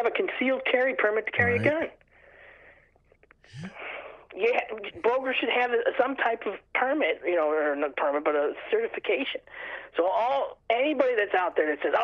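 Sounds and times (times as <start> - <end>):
person breathing: 2.1 - 2.9, 3.5 - 4.3, 9.5 - 9.9
mouth clicks: 3.2 - 3.8
breathy rising hum: 3.5 - 4.1.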